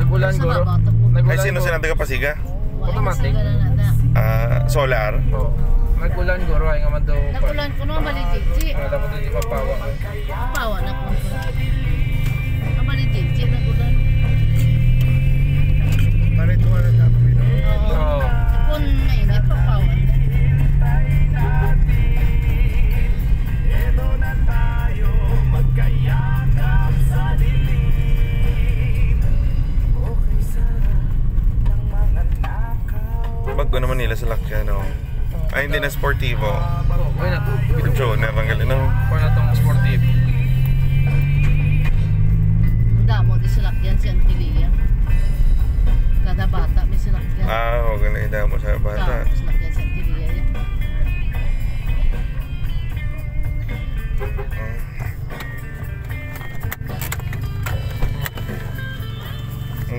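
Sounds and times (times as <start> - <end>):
voices: 0.0 - 31.2, 31.8 - 41.8
car interior drone: 0.0 - 59.9
music playing: 0.0 - 59.9.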